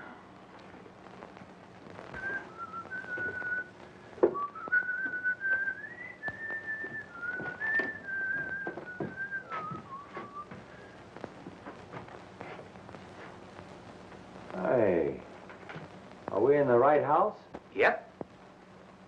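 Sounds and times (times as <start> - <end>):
man whistling a slow tune: 2.1 - 3.7, 4.3 - 10.6
footsteps on stairs: 4.2 - 13.3.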